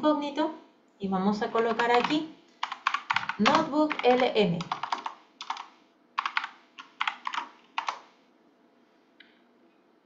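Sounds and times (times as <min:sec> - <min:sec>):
typing on computer keyboard: 0:01.5 - 0:08.1.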